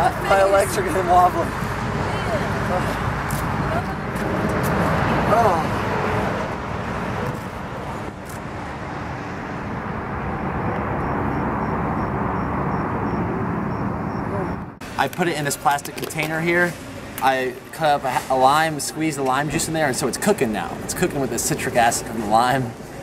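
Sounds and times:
road traffic noise: 0.0 - 23.0
wind rumbling on microphone: 1.5 - 14.8.

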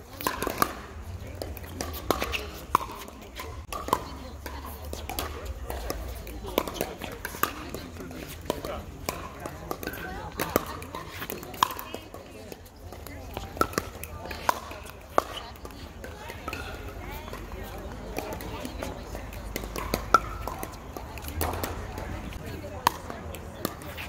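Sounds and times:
players' voices: 0.0 - 24.0
paddles striking plastic ball: 5.0 - 16.6.

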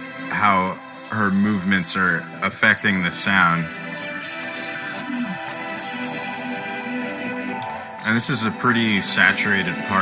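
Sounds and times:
bowed viola with heavy reverb: 0.0 - 10.0.

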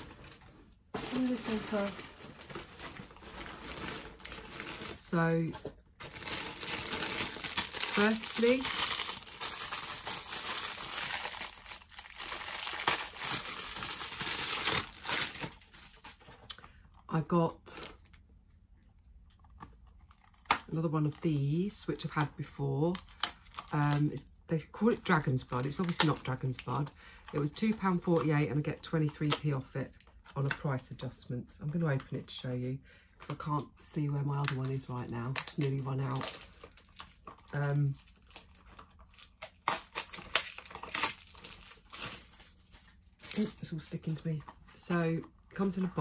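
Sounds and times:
plastic packaging crinkling and tearing: 0.0 - 16.8, 19.4 - 30.7, 34.3 - 46.0.

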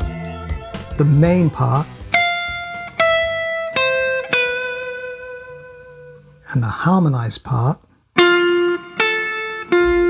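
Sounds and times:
electric guitar riff: 0.0 - 6.4, 8.2 - 10.0.

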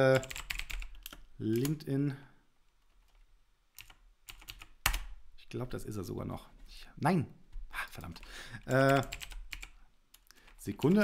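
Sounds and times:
computer keyboard keystrokes: 0.1 - 1.8, 3.8 - 5.1, 8.7 - 11.0.

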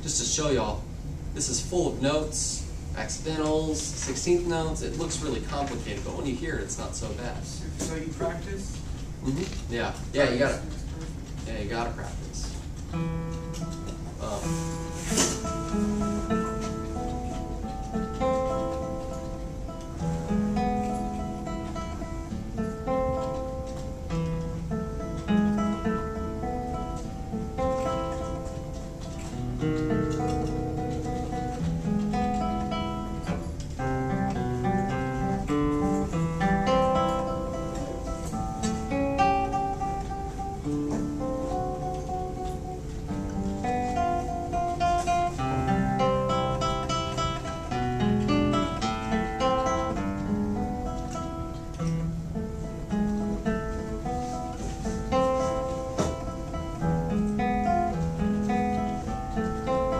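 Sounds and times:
classical guitar fingerstyle: 12.6 - 59.9.

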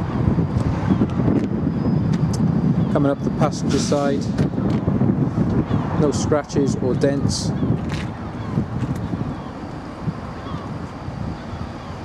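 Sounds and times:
gusty outdoor rumble: 0.0 - 12.0.

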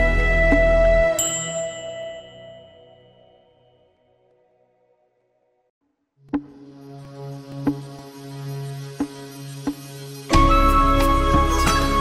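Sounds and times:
bell-like metallic chime: 1.2 - 4.0.

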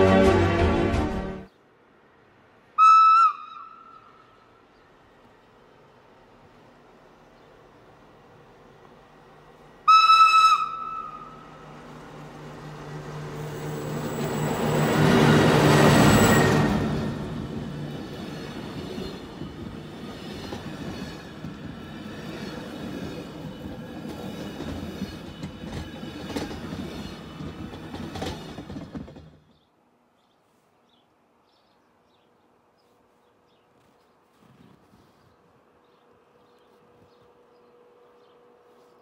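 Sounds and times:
train horn blast: 0.0 - 1.5, 9.8 - 11.6
train hum: 0.0 - 30.1, 31.2 - 39.0
wheel noise on rails: 4.7 - 29.7.

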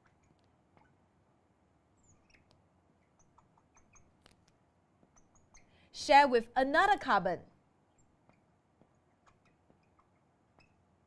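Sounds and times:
marker pen squeaking on glass: 0.0 - 1.0, 2.0 - 5.8, 7.9 - 10.9.

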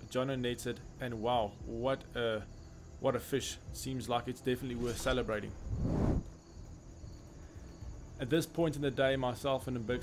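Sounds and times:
faint outdoor background noise: 0.0 - 10.0
low rumble: 4.7 - 6.4.

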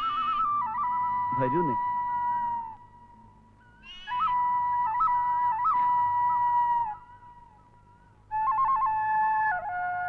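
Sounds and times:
flute-like melody: 0.0 - 10.0.

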